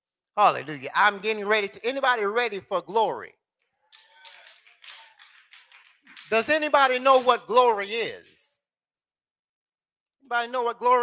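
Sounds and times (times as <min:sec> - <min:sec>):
hand clapping: 0:03.8 - 0:08.6.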